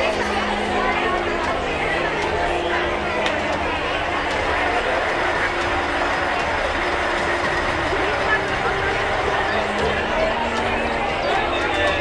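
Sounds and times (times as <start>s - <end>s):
crowd talking: 0.0s - 12.0s
fire engine running: 0.0s - 12.0s.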